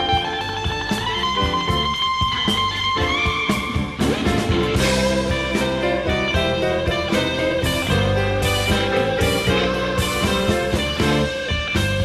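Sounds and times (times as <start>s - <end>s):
bass guitar: 0.0s - 12.0s
drums: 0.0s - 12.0s
electric guitar lead: 0.0s - 12.0s.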